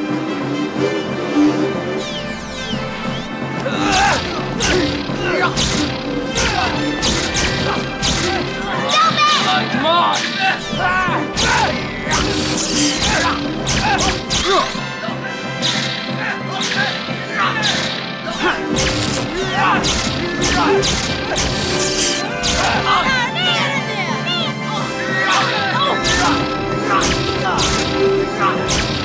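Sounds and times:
dramatic background music: 0.0 - 29.0
light swords clashing: 2.0 - 14.9, 15.6 - 23.2, 25.2 - 29.0.

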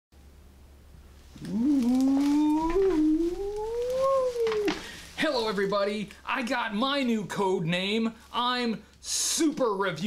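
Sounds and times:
faint low hum: 0.2 - 10.0.

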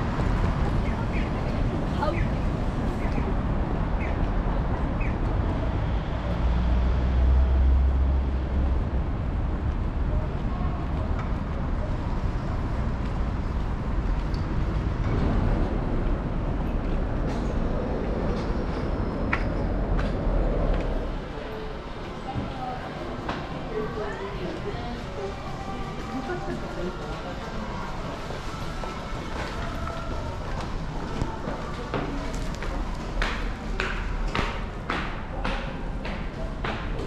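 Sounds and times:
passing cars and buses: 0.0 - 37.0.

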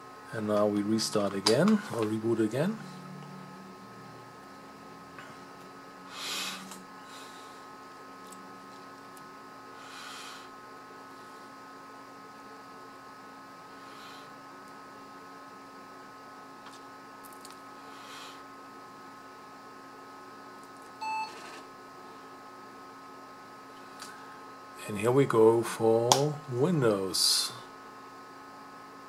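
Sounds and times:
computer humming: 0.0 - 29.0
short computer beep: 21.0 - 21.4.

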